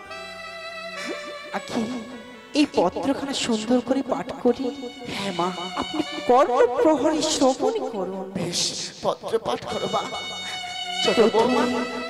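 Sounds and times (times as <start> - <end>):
buzzy instrument notes: 0.0 - 8.8, 9.6 - 12.0
person singing: 1.0 - 2.2, 2.8 - 12.0.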